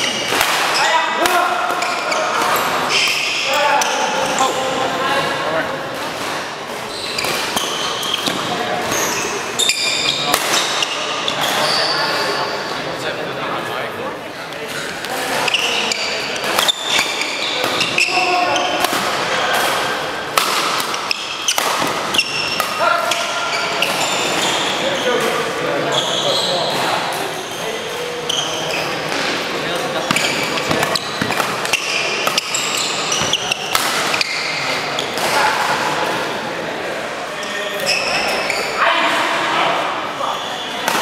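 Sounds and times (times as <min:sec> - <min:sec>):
voices echoing in hall: 0:00.0 - 0:41.0
racket hitting shuttlecock: 0:00.3 - 0:02.5, 0:10.3 - 0:10.9, 0:18.8 - 0:24.2, 0:30.0 - 0:34.4
shoes squeaking on floor: 0:01.7 - 0:04.7, 0:06.8 - 0:12.8, 0:15.2 - 0:19.5, 0:21.0 - 0:29.3, 0:29.9 - 0:35.2, 0:37.4 - 0:38.9, 0:40.1 - 0:40.9.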